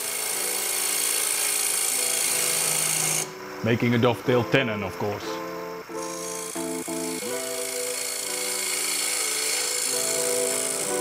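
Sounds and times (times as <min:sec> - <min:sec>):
lathe scraper cutting wood hiss: 0:00.0 - 0:03.5, 0:05.9 - 0:11.0
background music with held chords: 0:00.0 - 0:11.0.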